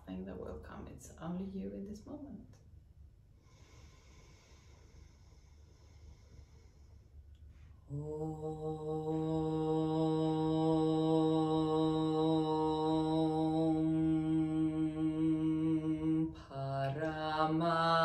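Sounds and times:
woman chanting a long hum: 7.9 - 18.0.

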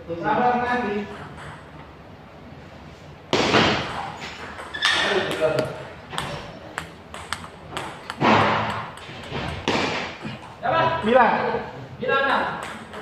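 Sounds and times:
table tennis ball ticking: 4.6 - 9.7.

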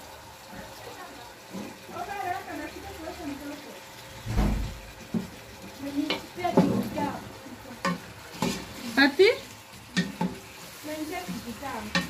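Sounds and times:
meat sizzling: 0.0 - 12.0
wooden spoon scraping metal pot: 7.8 - 9.0.

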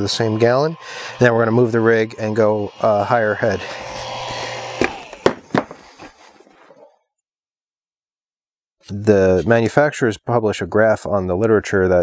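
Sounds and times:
steady running hum and hiss: 0.0 - 5.2
sharp knocks on pump rig: 4.8 - 5.8.

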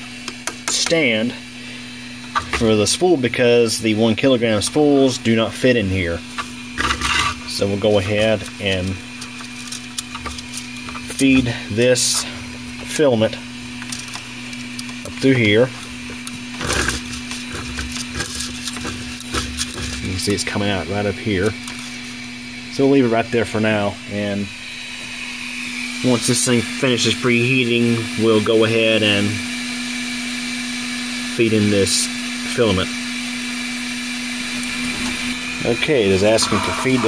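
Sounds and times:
printer humming: 0.0 - 29.5, 34.3 - 37.0
filament rubbing and clicks: 6.3 - 12.0, 13.8 - 20.2.

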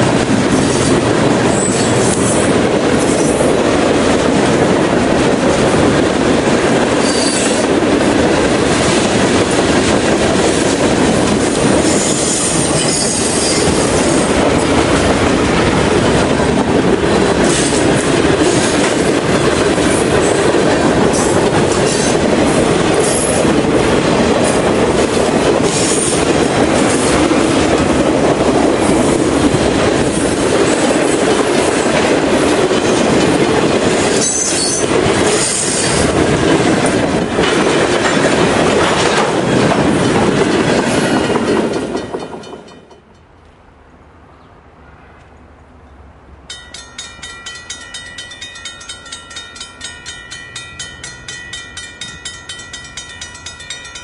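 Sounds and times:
train wheels rumbling on rail: 0.0 - 43.6
wheels clicking over rail joints: 0.3 - 43.6
high-pitched wheel squeals: 12.0 - 13.8.

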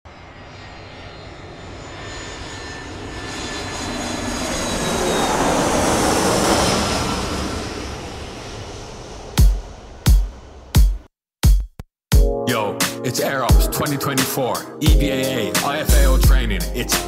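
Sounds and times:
jet aircraft flying past: 0.1 - 10.8.

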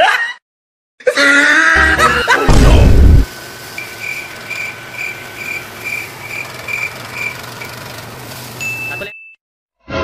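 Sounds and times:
thresher humming: 1.8 - 9.0.

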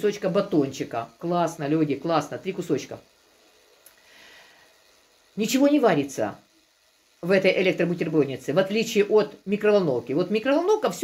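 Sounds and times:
faint breath: 3.9 - 4.9.

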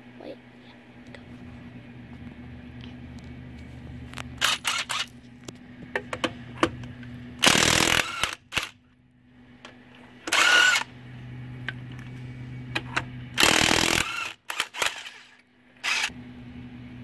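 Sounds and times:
impact wrench hammering: 7.4 - 8.7, 13.4 - 14.9.

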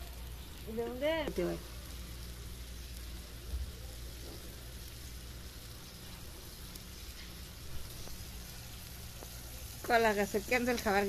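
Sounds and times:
vegetables sizzling in a wok: 0.0 - 11.0.

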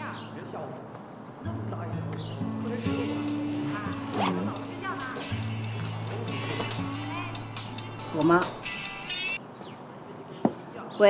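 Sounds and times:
spoken dialogue: 1.5 - 8.8.

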